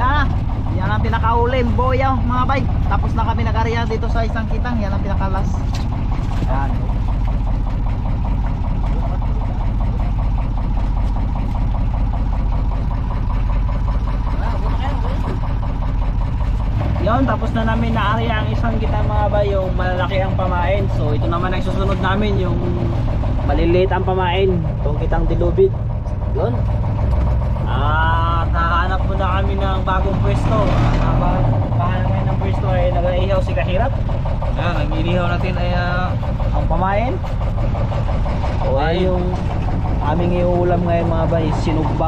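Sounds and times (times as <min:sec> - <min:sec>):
boat engine droning: 0:00.0 - 0:42.0
people talking: 0:06.4 - 0:07.0, 0:08.8 - 0:10.3, 0:14.3 - 0:15.5, 0:17.0 - 0:26.6, 0:27.6 - 0:37.2, 0:38.5 - 0:42.0.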